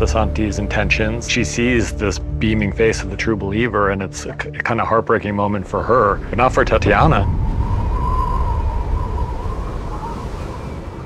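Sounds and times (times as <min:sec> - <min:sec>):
wind rumbling: 0:05.2 - 0:11.0.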